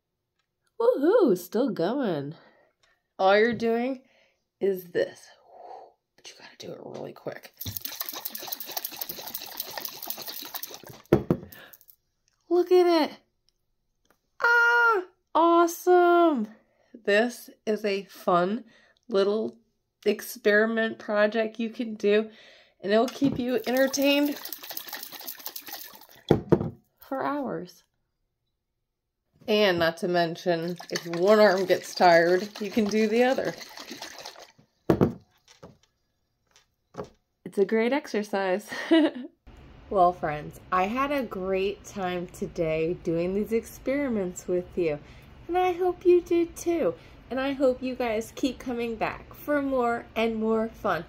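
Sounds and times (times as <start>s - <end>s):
water sloshing in glass jar: 7.6s - 11.8s, 23.4s - 26.5s, 30.4s - 34.7s
glass jar knocking on wooden table: 11.1s - 11.5s, 26.3s - 26.8s, 34.9s - 35.2s.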